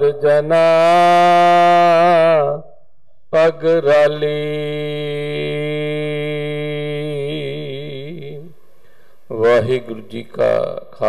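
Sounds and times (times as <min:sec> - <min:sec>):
man chanting scripture: 0:00.0 - 0:02.6, 0:03.4 - 0:08.6, 0:09.3 - 0:11.0.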